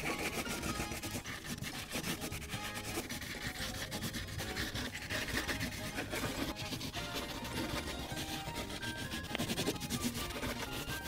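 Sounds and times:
crayon scratching on paper: 0.0s - 11.0s.

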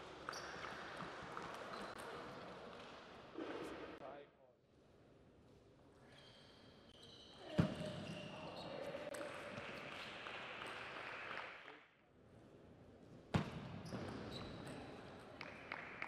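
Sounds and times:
voices in a hall: 5.8s - 13.0s.

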